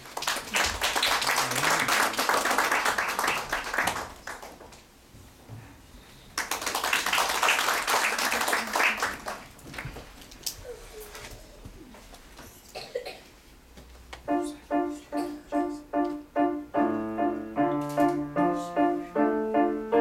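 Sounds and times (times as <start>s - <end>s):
audience applause: 0.0s - 4.6s, 6.4s - 9.9s.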